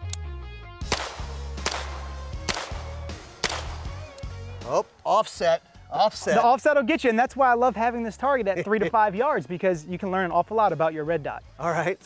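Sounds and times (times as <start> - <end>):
carbine gunshots: 0.9 - 3.8.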